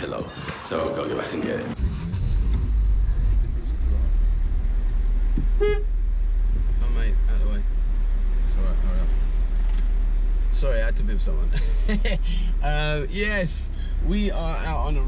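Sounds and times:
car engine rumbling: 0.0 - 15.0
car horn toot: 5.5 - 6.0.

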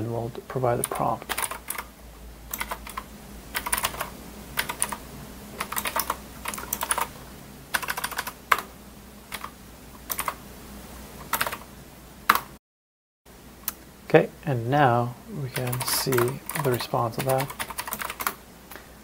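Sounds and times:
typing on computer keyboard: 0.8 - 1.9, 2.5 - 3.0, 3.6 - 5.0, 5.6 - 7.1, 7.8 - 8.7, 9.3 - 9.5, 10.1 - 10.4, 11.3 - 11.6, 15.6 - 18.4.

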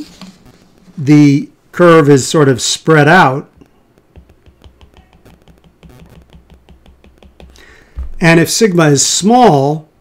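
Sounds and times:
stylus tapping on tablet screen: 3.6 - 8.1.

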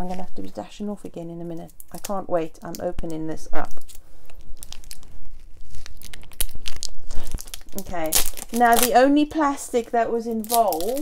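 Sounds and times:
plastic wrapping crinkling: 1.4 - 11.0.

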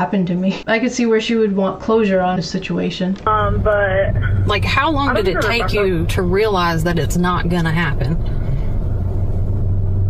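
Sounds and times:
low rumble with hum: 3.2 - 10.0.

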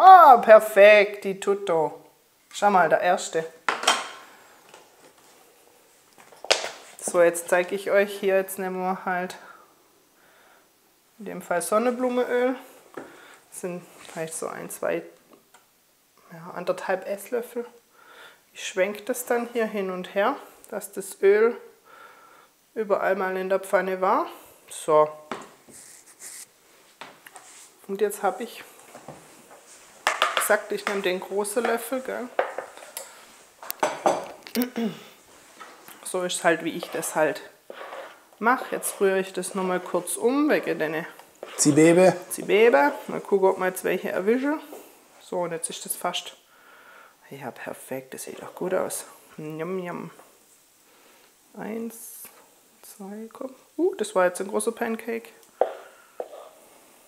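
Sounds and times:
kitchenware clattering: 3.7 - 4.4, 30.0 - 33.1, 33.7 - 34.4
person speaking: 30.4 - 32.5, 35.9 - 46.0.

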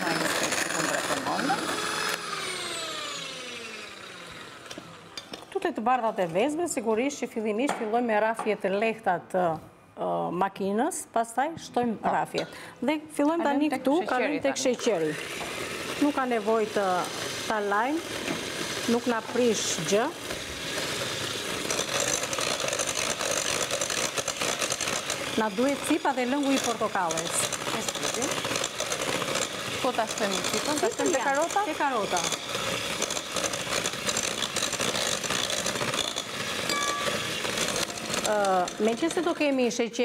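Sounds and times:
electric hand mixer whining: 0.0 - 5.3, 13.8 - 40.0.

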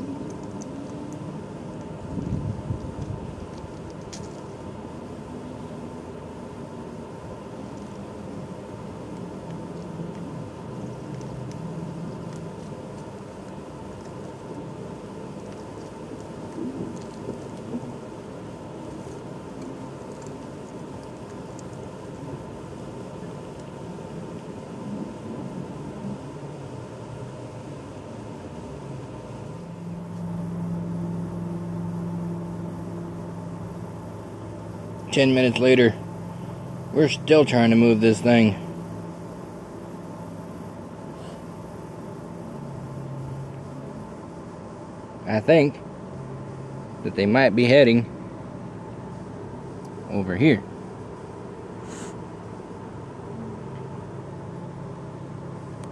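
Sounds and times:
low mechanical hum: 0.0 - 55.9
steady louder hum: 0.0 - 55.9.

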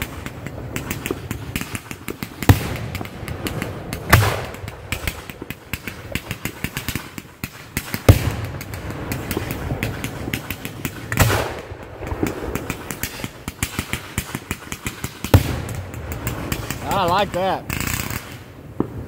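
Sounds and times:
fireworks crackling and popping: 0.0 - 19.0
fireworks launching thumps: 0.0 - 19.0.

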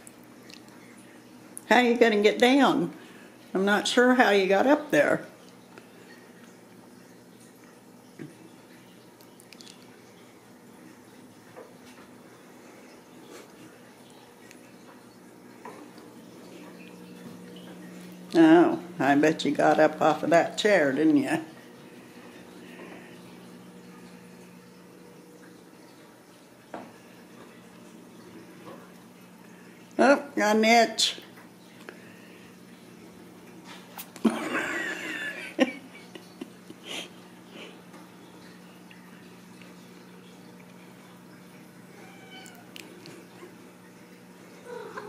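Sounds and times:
kitten meowing: 42.0 - 42.6.

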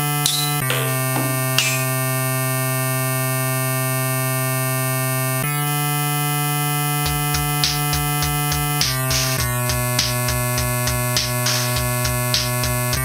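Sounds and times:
synthesizer drone: 0.0 - 2.4.

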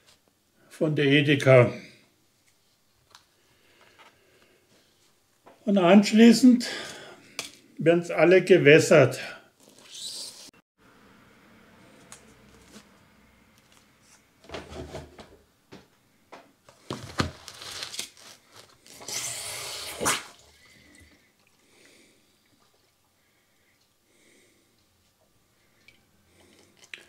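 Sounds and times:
plastic trays rustling and knocking: 14.4 - 15.9, 16.7 - 17.8.

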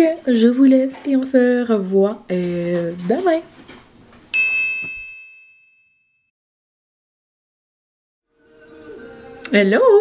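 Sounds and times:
bright chime ringing: 4.4 - 6.1.

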